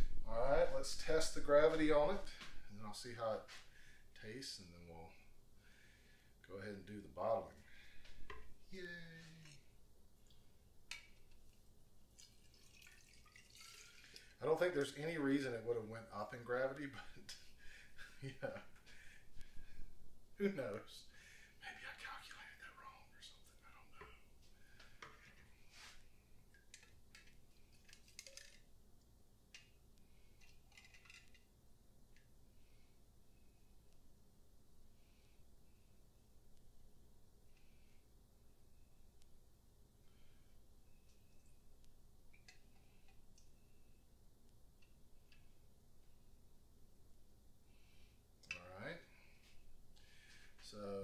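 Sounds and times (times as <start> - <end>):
faint clicks and taps of glassware: 42.3 - 43.5.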